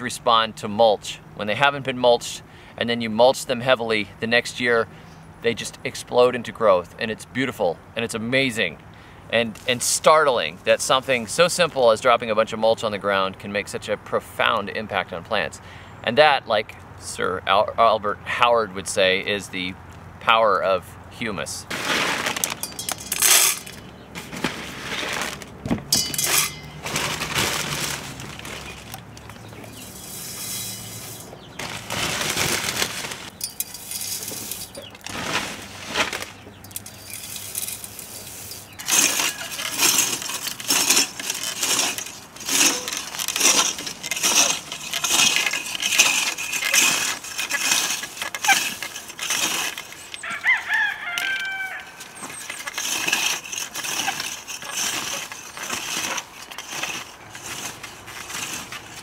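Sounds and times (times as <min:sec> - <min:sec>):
wheel hoe scraping soil: 0:09.3 - 0:13.2, 0:21.4 - 0:59.0
clinks and rustles: 0:21.7 - 0:59.0
rooster crowing: 0:38.9 - 0:39.9, 0:50.2 - 0:52.1.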